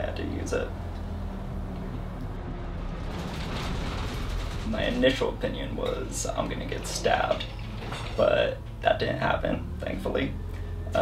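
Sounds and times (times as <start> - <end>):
vehicle engine and road rumble: 0.0 - 11.0.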